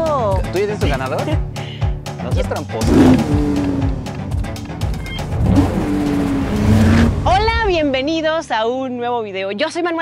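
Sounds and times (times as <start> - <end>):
background music: 0.0 - 10.0
car engine revving: 2.8 - 8.2.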